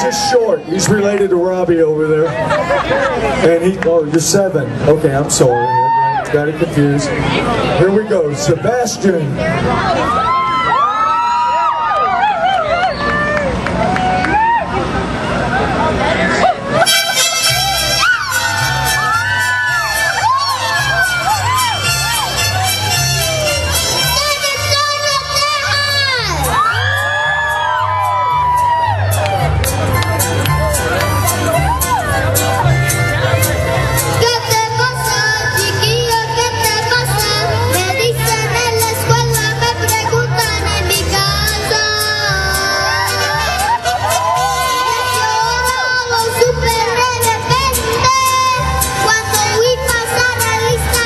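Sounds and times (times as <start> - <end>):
crowd cheering and whooping: 0.0 - 0.6, 5.4 - 6.5, 9.7 - 33.4, 41.8 - 46.0
mariachi band playing: 15.0 - 51.0
amplified music with bass pulse: 16.8 - 51.0
high voice singing: 34.0 - 51.0.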